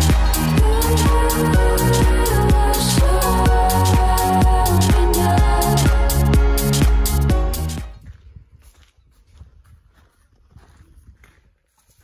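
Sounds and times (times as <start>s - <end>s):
footsteps on bare rock: 7.8s - 12.0s
wind rumble on microphone: 7.8s - 12.0s.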